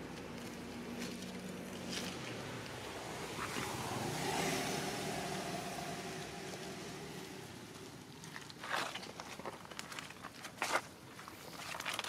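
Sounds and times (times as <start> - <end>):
vehicle engine passing by: 0.0 - 8.3.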